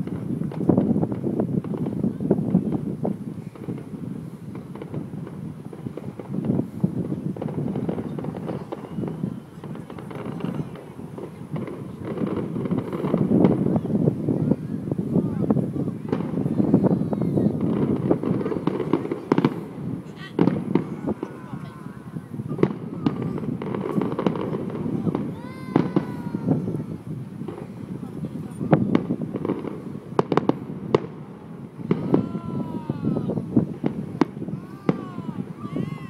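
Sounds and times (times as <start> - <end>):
fireworks bursting with bangs: 0.0 - 36.0.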